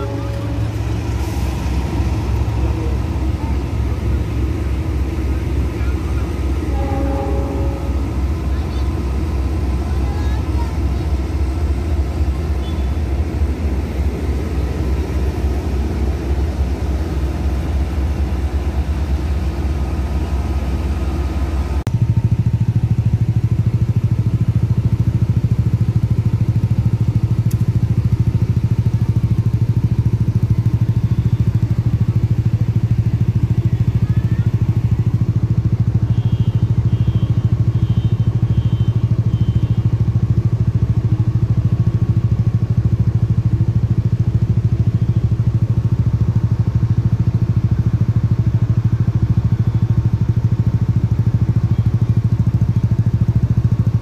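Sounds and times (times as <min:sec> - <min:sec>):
engine idling: 0:00.0 - 0:54.0.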